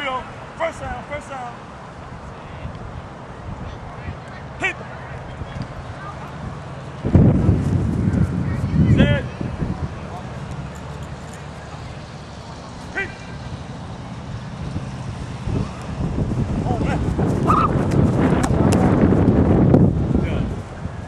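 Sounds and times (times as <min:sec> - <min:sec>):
distant shouts and voices: 0:00.0 - 0:19.0
wind rumble on microphone: 0:05.3 - 0:10.7, 0:13.9 - 0:21.0.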